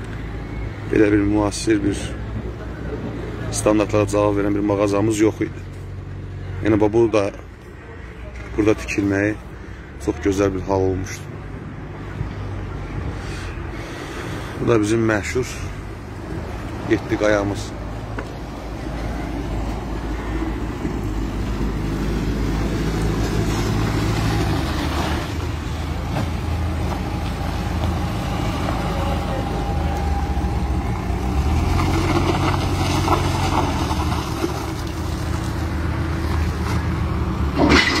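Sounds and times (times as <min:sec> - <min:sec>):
vehicle engine rumbling: 0:00.0 - 0:38.0.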